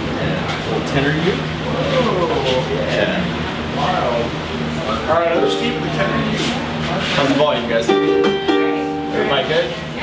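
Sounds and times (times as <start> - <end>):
indistinct chatter: 0.0 - 10.0
steady low hum: 0.0 - 10.0.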